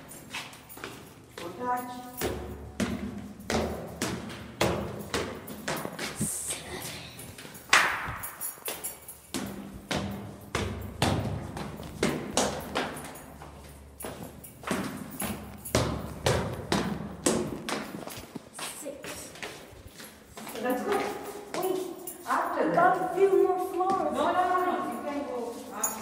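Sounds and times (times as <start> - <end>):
footsteps on concrete stairs: 0.0 - 26.0.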